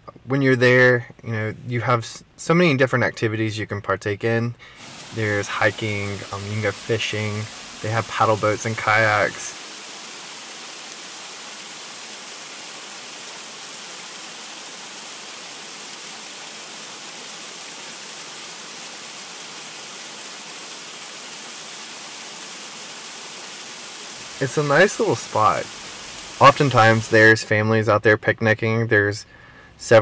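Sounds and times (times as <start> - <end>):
steady hiss: 4.6 - 27.6.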